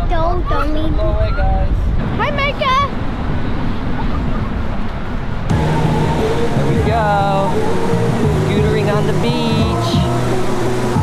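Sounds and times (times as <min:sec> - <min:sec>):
surf rumbling: 0:00.0 - 0:11.0
background music: 0:05.5 - 0:11.0.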